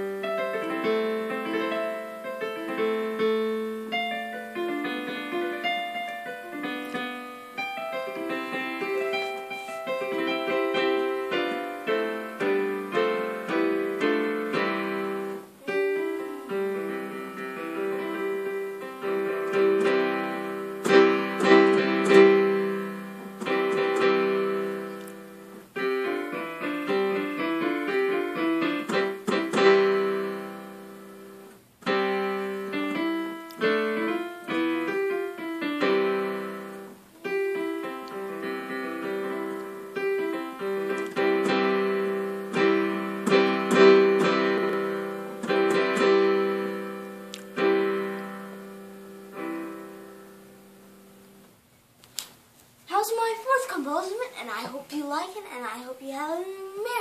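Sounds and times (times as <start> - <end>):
digital piano notes and chords: 0.0 - 51.6.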